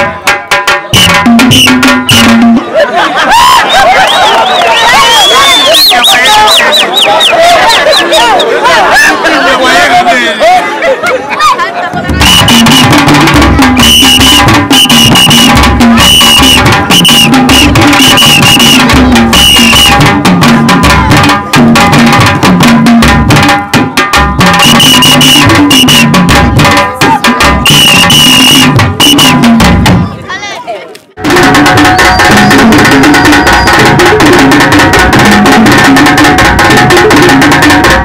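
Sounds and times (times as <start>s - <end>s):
wooden drums beaten fast: 0.0s - 9.2s, 11.9s - 30.2s, 31.2s - 38.0s
high piping notes: 12.0s - 23.0s, 31.2s - 38.0s.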